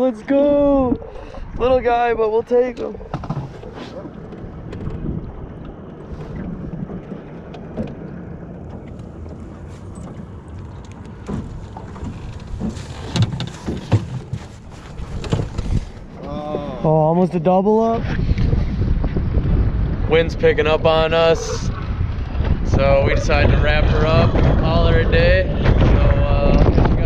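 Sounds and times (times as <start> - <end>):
water lapping at hull: 0.0 - 17.2
wind rumbling on microphone: 0.0 - 27.0
knocks and clicks of gear: 6.7 - 14.5.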